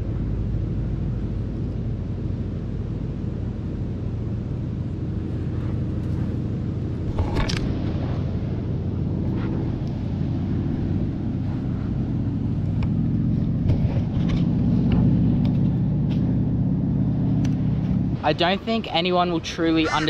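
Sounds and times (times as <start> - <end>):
wind buffeting microphone: 4.1 - 20.0.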